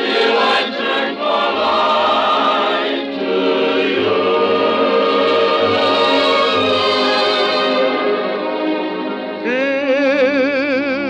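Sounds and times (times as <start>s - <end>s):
orchestral accompaniment: 0.0s - 9.5s
voices singing held notes: 0.0s - 11.0s.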